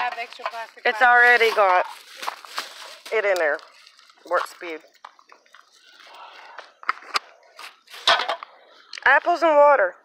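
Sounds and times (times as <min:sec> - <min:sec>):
paper bag rustling: 0:00.0 - 0:04.8.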